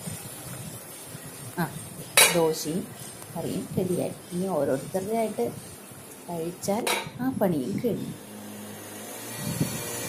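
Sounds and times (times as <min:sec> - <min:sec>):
woman speaking: 0:01.6 - 0:05.6, 0:06.3 - 0:08.2.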